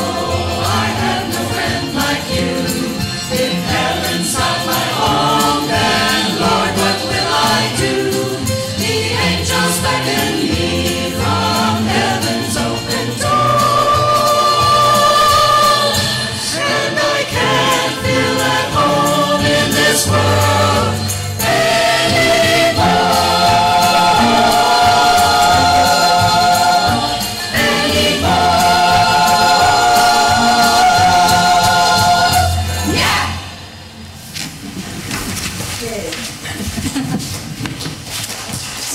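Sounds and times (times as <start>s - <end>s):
choir singing: 0.0s - 34.1s
piano accompaniment: 0.0s - 34.1s.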